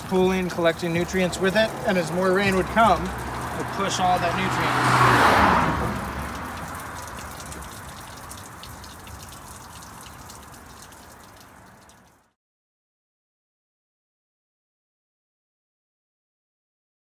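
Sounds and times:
water trickling and dripping: 0.0 - 12.4.

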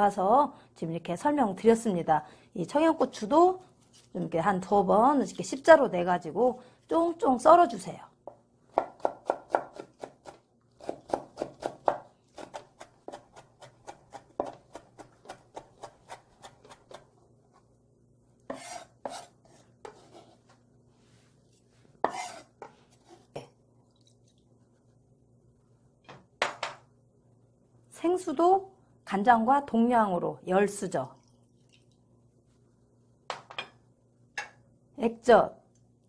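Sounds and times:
knife chopping on wooden board: 8.3 - 17.0, 22.0 - 22.7.

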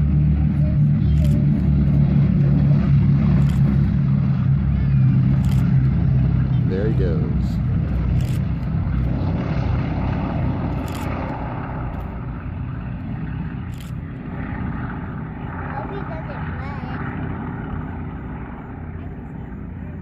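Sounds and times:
propeller plane engines droning: 0.0 - 20.0.

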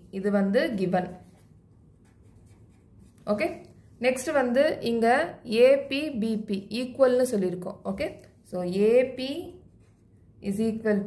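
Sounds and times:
person speaking: 0.0 - 9.8
pen scratching on paper: 0.9 - 3.6.

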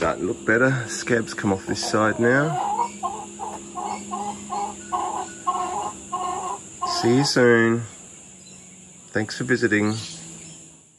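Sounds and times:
hen clucking: 1.0 - 7.8.

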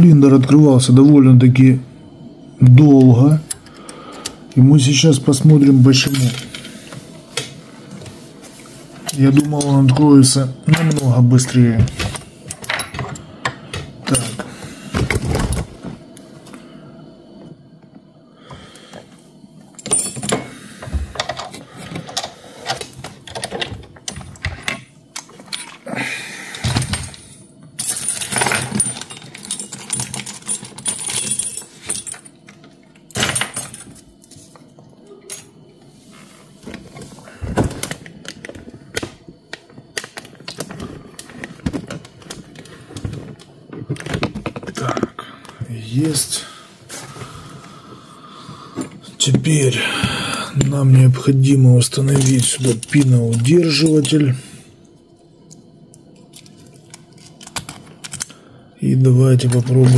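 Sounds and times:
metal tools clicking and clinking: 6.0 - 6.8, 19.8 - 20.5, 21.2 - 25.8, 26.7 - 34.4, 51.9 - 54.3.

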